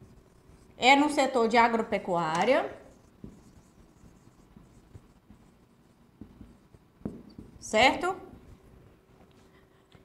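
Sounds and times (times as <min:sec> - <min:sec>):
marker writing on whiteboard: 0:00.0 - 0:08.8.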